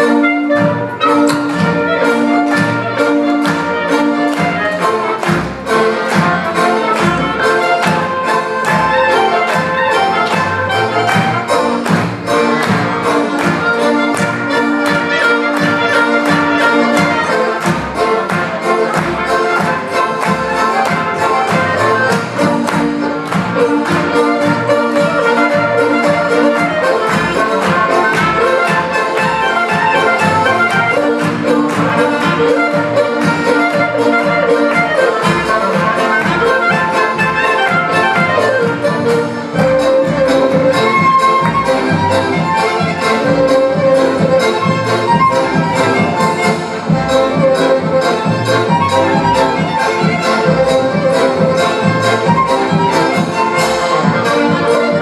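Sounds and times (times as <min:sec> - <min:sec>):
folk band playing polka: 0:00.0 - 0:55.0.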